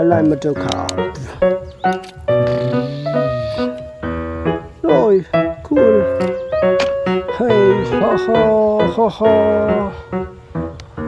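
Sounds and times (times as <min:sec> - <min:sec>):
music of held notes: 0:00.0 - 0:11.0.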